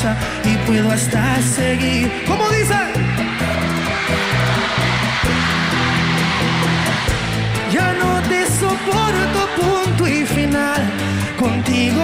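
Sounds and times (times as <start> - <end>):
live band playing: 0.0 - 12.0
crowd roar: 0.6 - 12.0.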